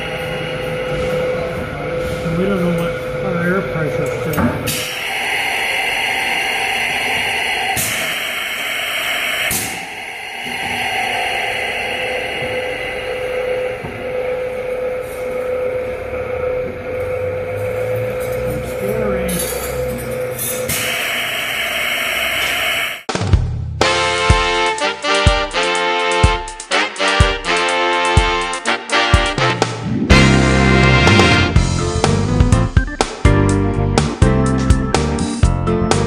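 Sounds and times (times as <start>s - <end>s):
rollers grinding steel: 0.0s - 21.3s.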